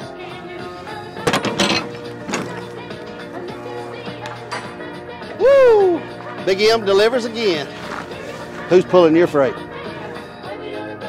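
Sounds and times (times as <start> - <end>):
background music: 0.0 - 11.0
metal lock handles clanking: 0.9 - 3.6, 4.2 - 4.8.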